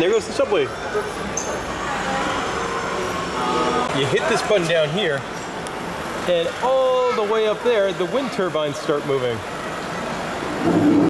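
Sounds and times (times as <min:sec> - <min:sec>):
faint voices: 0:00.0 - 0:10.6.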